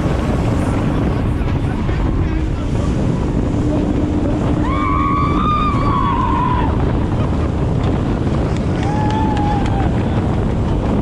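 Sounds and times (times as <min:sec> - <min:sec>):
jet boat running at speed: 0:00.0 - 0:11.0
rushing water: 0:00.0 - 0:11.0
wind buffeting microphone: 0:00.0 - 0:11.0.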